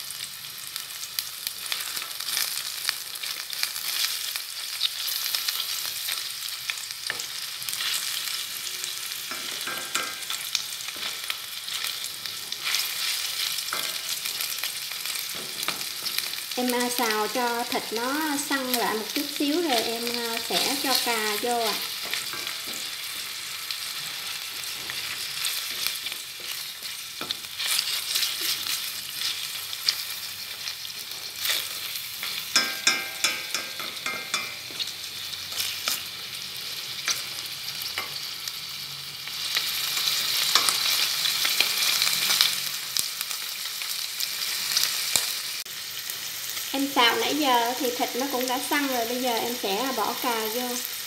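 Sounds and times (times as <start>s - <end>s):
meat sizzling in hot oil: 0.0s - 51.0s
chopsticks scraping metal pan: 19.7s - 23.4s.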